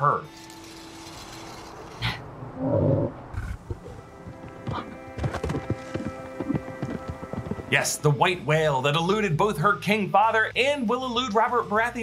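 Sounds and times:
soft film score music: 3.5 - 12.0.

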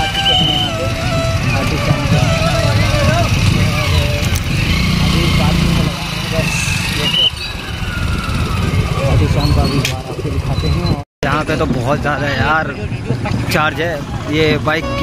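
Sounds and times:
wind noise on microphone: 0.0 - 5.9, 6.6 - 13.5
motorcycle running at low speed: 0.0 - 10.7
crowd voices: 0.0 - 15.0.

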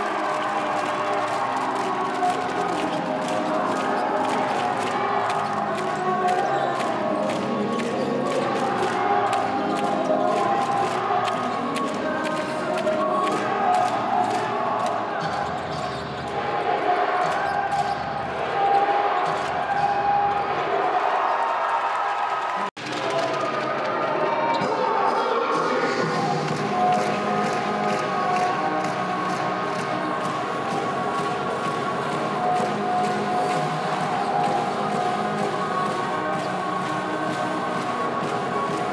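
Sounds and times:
music: 0.0 - 20.6, 22.8 - 38.9
crowd voices and cheering: 0.0 - 38.9.

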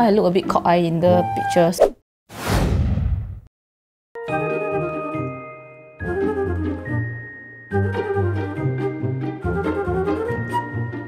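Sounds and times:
whoosh sound effect: 2.3 - 3.5.

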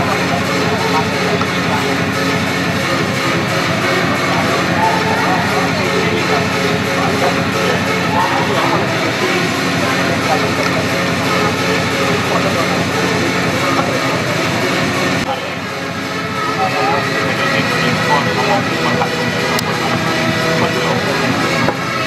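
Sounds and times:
loud droning hum: 0.0 - 22.0
voices calling out: 0.0 - 22.0.

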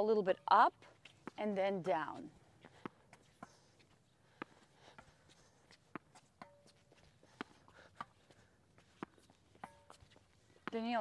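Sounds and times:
tennis ball hitting racket: 5.7 - 8.2, 8.8 - 11.0
tennis ball bouncing on court: 8.9 - 11.0.

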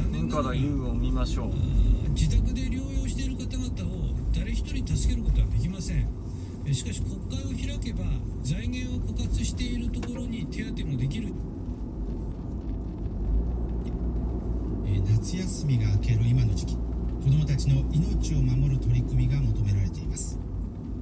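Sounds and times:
car cabin road rumble: 0.0 - 21.0.

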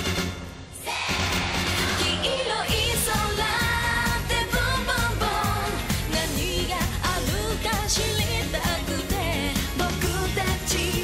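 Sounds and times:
female group singing pop: 0.8 - 11.0
upbeat pop backing: 0.9 - 11.0.

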